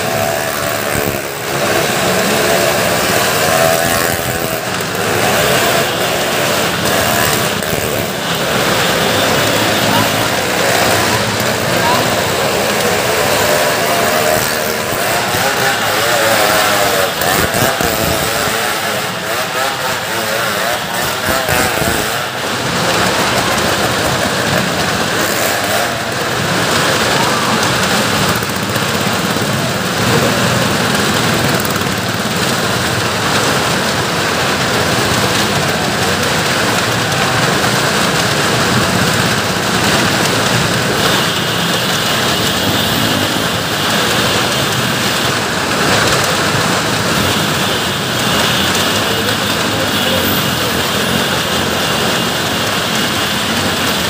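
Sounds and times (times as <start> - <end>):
engines revving on wooden wall: 0.0 - 54.0.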